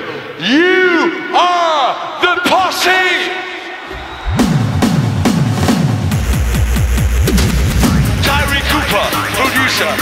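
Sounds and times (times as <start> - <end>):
electronic kick drums: 3.9 - 8.6
steady bass: 3.9 - 10.0.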